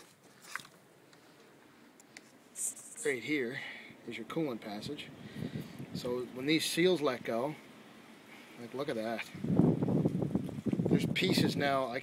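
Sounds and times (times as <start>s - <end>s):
faint hiss: 1.0s - 12.0s.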